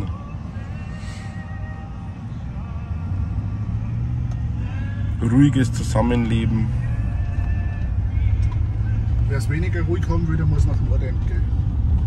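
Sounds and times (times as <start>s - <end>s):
truck engine and tyres droning: 0.0s - 12.0s.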